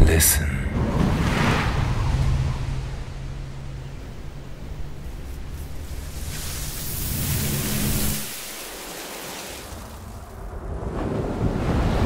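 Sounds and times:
low hum: 0:00.0 - 0:08.8
rushing wind-like noise: 0:00.8 - 0:12.0.

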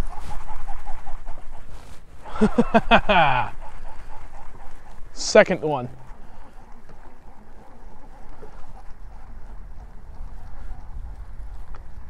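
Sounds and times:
man laughing: 0:02.2 - 0:03.6.

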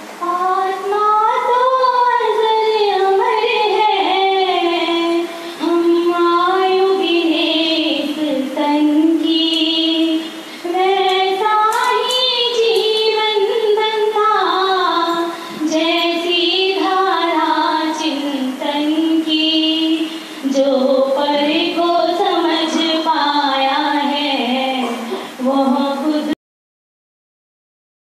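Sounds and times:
person singing devotional song: 0:00.2 - 0:26.4
singer breathing: 0:05.3 - 0:05.6, 0:10.3 - 0:10.7, 0:20.1 - 0:20.4.

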